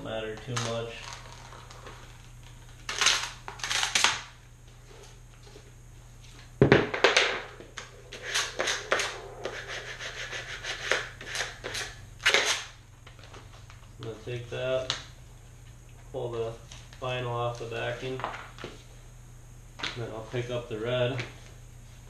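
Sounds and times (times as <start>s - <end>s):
vinyl sheets crinkling and rustling: 0.0s - 6.6s, 12.9s - 15.8s, 16.4s - 19.0s.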